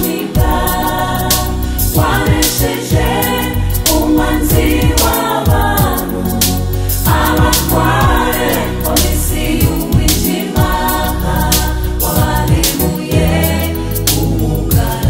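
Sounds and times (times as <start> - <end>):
choir singing in harmony: 0.0 - 15.0
instrumental accompaniment with beat: 0.0 - 15.0.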